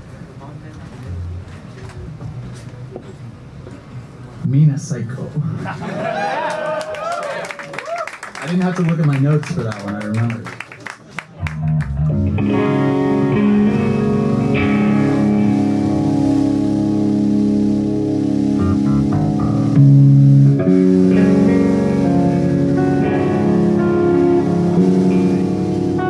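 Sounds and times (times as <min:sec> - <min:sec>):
electric guitar chords: 0:01.0 - 0:02.3, 0:11.4 - 0:26.0.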